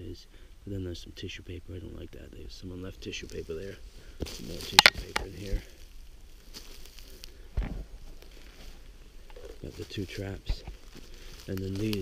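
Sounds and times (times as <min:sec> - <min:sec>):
footsteps on snow and leaves: 0:03.0 - 0:12.0.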